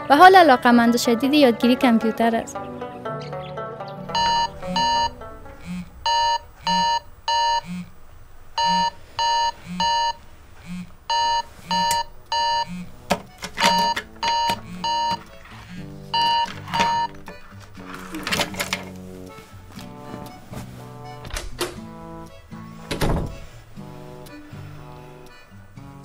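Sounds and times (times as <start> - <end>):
soft low pulse: 4.1 - 13.0
phone alarm beeping: 4.1 - 17.3.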